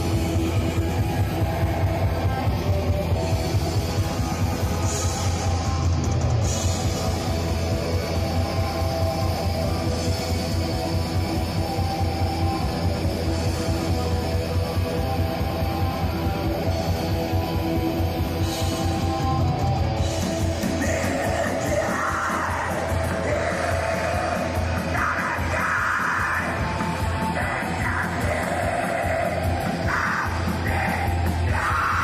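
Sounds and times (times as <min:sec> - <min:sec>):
bass guitar: 0:00.0 - 0:32.0
distorted electric guitars: 0:00.0 - 0:32.0
fast dense drumming: 0:00.0 - 0:32.0.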